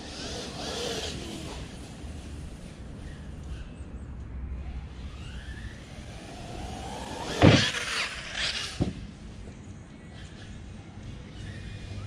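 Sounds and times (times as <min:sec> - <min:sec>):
electric motor whine: 0:04.6 - 0:08.9
toy car landing thud: 0:07.2 - 0:09.0.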